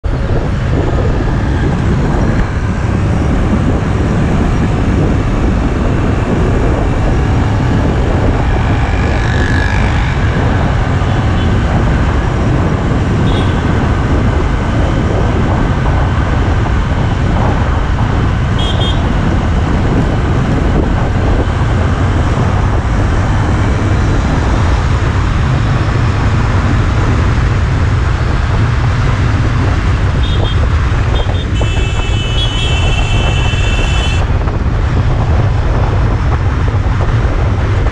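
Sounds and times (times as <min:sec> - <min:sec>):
motorcycle engine: 0:00.0 - 0:37.9
road noise rumble: 0:00.0 - 0:37.9
traffic noise: 0:00.0 - 0:37.9
wind rush: 0:00.0 - 0:37.9.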